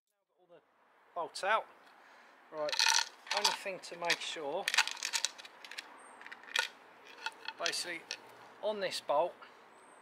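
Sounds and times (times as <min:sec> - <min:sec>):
metal bolts clinking: 0:02.6 - 0:08.2.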